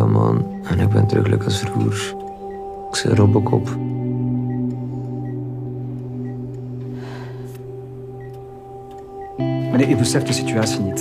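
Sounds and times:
low musical drone: 0.0 - 11.0.

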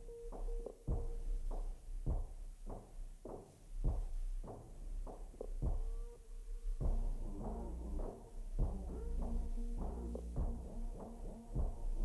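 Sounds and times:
quiet background music: 0.0 - 12.0
slow low drum beat: 0.0 - 12.0.

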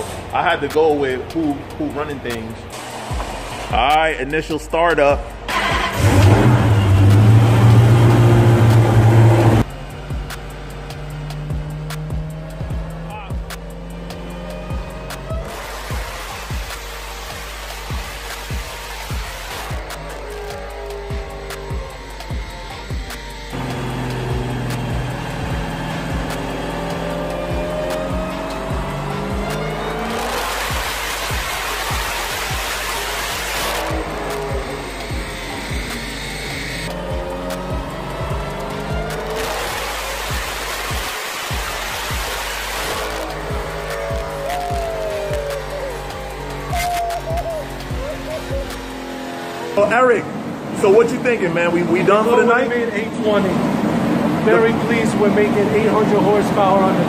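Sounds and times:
background music with steady beat: 0.0 - 50.2
supercharged engine revving: 5.3 - 57.0.

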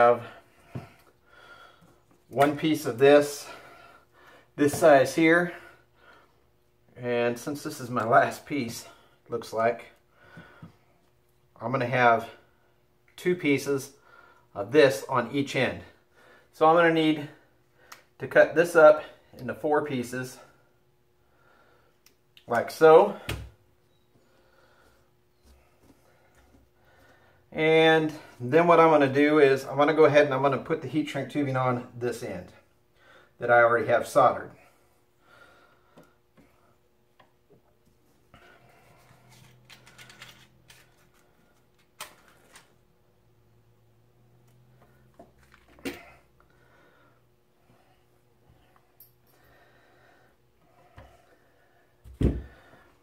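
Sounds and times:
small handling clicks and rustles: 39.0 - 42.8.

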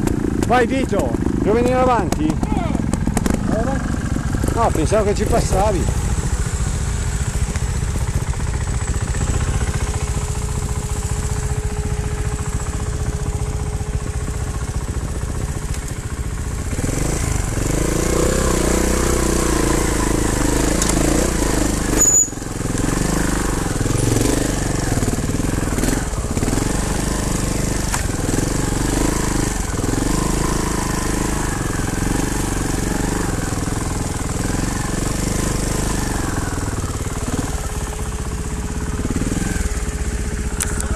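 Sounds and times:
motorcycle engine revving: 0.0 - 40.9.

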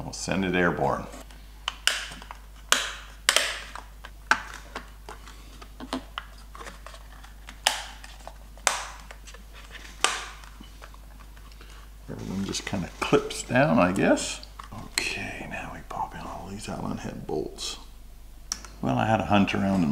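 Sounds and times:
plastic clicks and snaps: 1.6 - 5.2.

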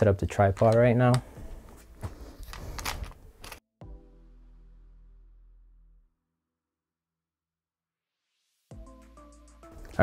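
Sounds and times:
tripod rustling and clicking: 0.5 - 3.6.

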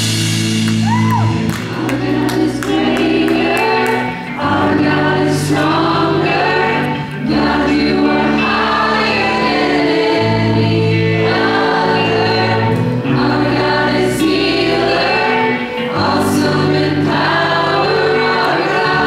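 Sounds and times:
drums: 0.0 - 19.0
electric guitar: 0.0 - 19.0
keyboard: 0.0 - 19.0
person singing: 0.9 - 19.0.

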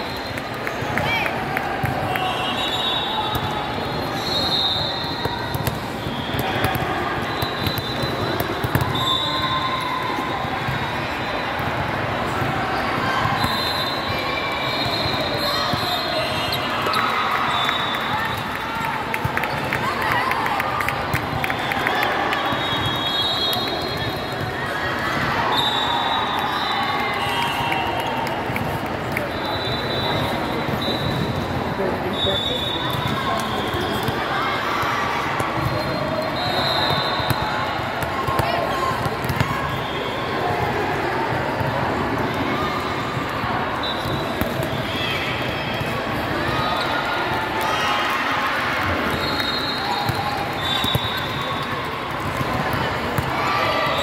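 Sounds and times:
babble of players and spectators: 0.0 - 54.0
volleyball bounced and struck: 5.1 - 9.1.

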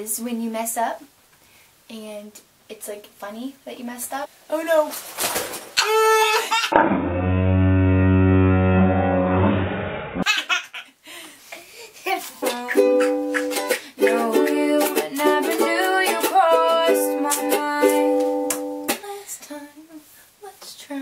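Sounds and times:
ukulele strumming chords: 12.4 - 19.0.

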